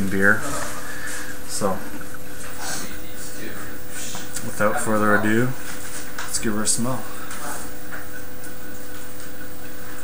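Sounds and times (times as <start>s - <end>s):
faint hum: 0.0s - 10.0s.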